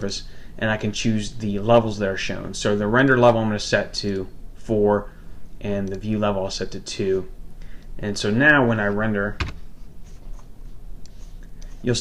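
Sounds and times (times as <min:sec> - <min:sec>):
man talking: 0:00.0 - 0:07.3, 0:08.0 - 0:09.5
faint background hiss: 0:00.0 - 0:12.0.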